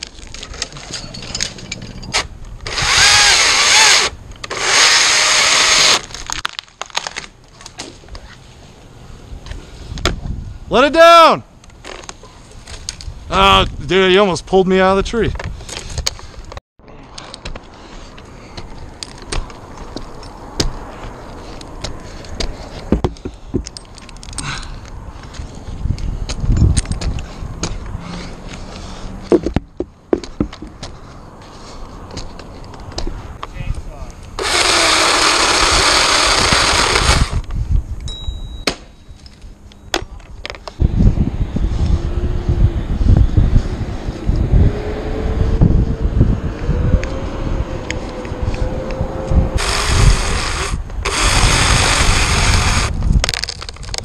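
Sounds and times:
chainsaw running: 2.7s - 6.0s, 34.4s - 37.4s, 49.6s - 53.0s.

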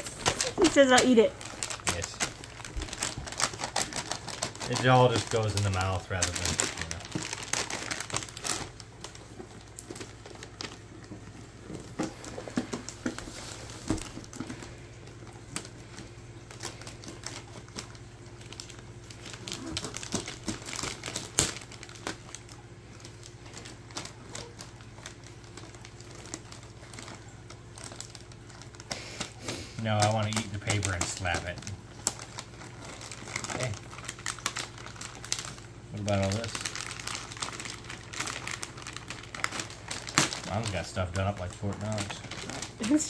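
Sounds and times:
wrapping paper crinkling: 0.0s - 43.0s.

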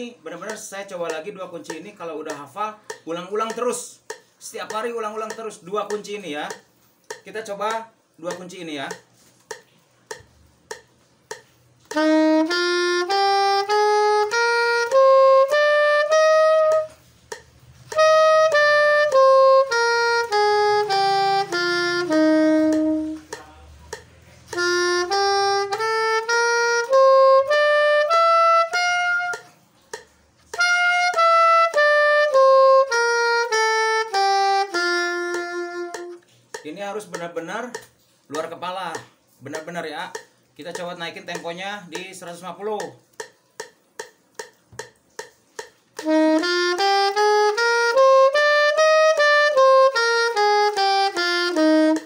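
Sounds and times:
soprano saxophone playing scales: 11.9s - 23.4s, 24.4s - 29.9s, 30.5s - 36.4s, 46.0s - 52.0s.

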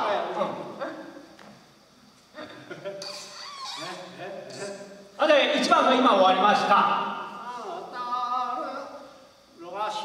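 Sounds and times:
people laughing: 2.4s - 3.3s.

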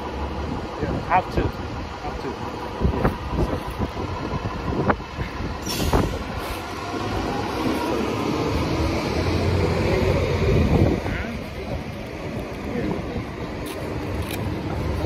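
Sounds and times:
heavy vehicle rumbling past: 0.0s - 13.6s
city traffic: 0.0s - 15.0s.

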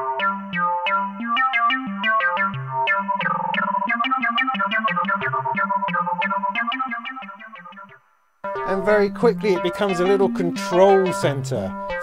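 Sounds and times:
synthesizer plucked notes: 0.0s - 12.0s.

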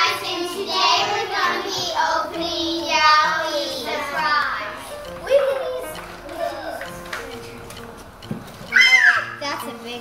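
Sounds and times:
faint background music: 0.0s - 10.0s
child's high-pitched squeal: 8.7s - 9.4s.

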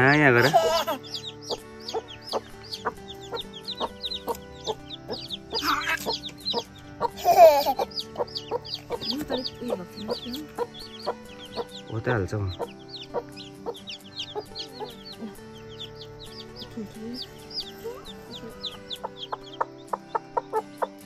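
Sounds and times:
background music sustained tones: 0.0s - 21.0s
chicks peeping: 0.0s - 21.0s.

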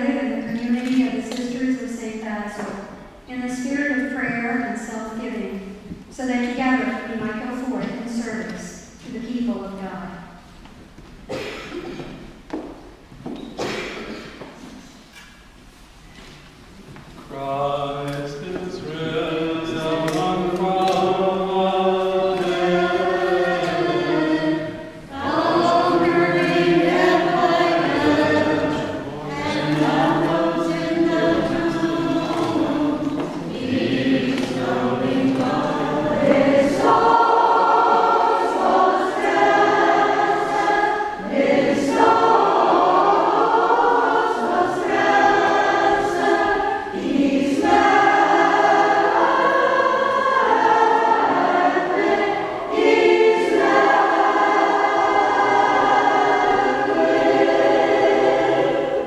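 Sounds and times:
choir singing a hymn: 17.2s - 59.0s.

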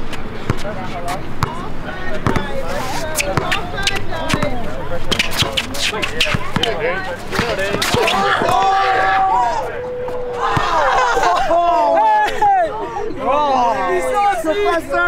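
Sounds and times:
voices of players and onlookers: 0.0s - 15.0s
basketball bouncing on hard court: 1.4s - 2.6s, 3.2s - 8.6s.

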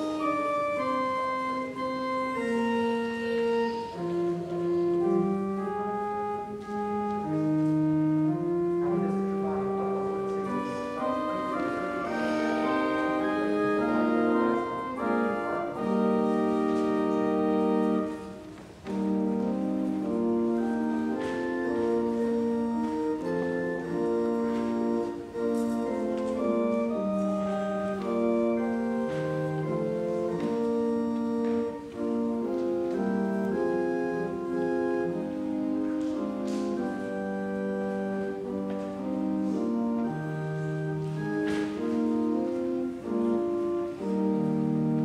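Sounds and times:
pipe organ chords: 0.0s - 45.0s.

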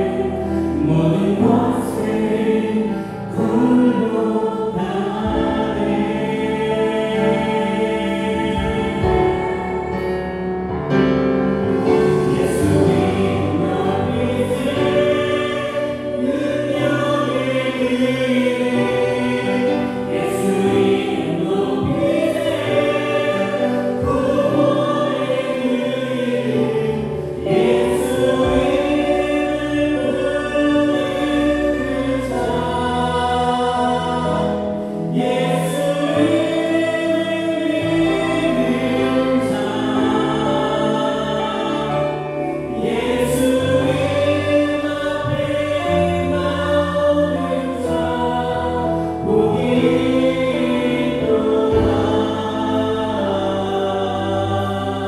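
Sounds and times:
keyboards: 0.0s - 55.0s
singers in unison: 0.0s - 55.0s.

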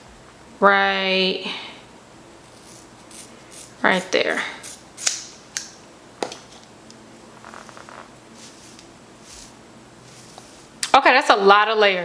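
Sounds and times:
wig hair rustling: 7.4s - 10.9s.

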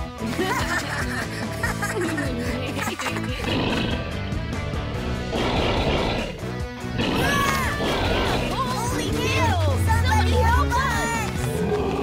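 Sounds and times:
cartoon background music: 0.0s - 12.0s
rough beastly roar: 3.4s - 4.3s, 5.2s - 8.7s, 11.4s - 12.0s.

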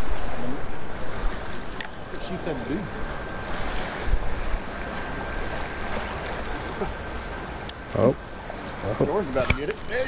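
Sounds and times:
sea washing around pier: 0.0s - 10.0s.

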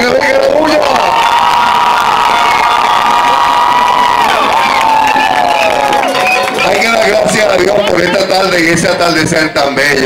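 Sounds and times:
crowd cheering and shouting: 0.0s - 8.5s.

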